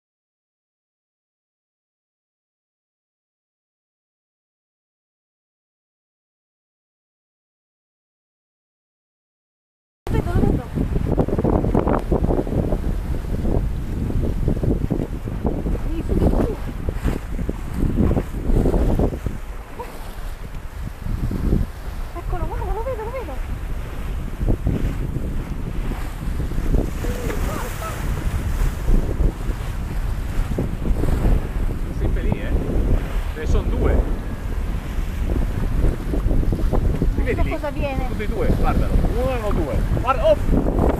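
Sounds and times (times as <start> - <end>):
churning wake water: 10.1 - 40.9
waves rushing: 10.1 - 40.9
wind buffeting microphone: 10.1 - 40.9.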